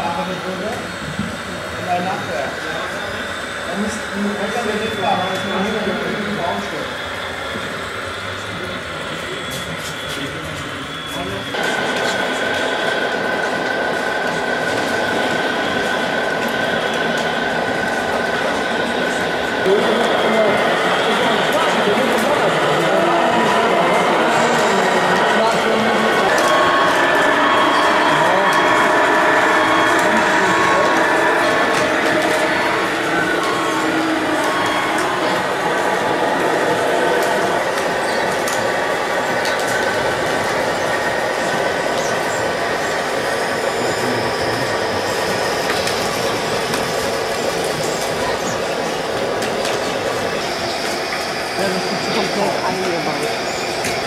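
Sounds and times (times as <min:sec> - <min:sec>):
people's voices: 0:00.0 - 0:54.0
rc truck drive whine: 0:00.0 - 0:54.0.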